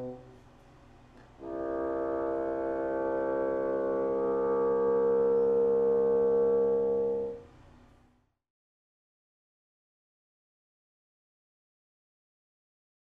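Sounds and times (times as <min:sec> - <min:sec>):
bassoon holding a note: 0:00.0 - 0:00.4, 0:01.4 - 0:07.5.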